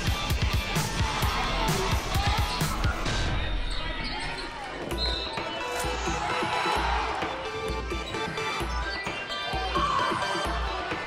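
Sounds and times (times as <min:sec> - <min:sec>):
crowd and player voices: 0:00.0 - 0:11.0.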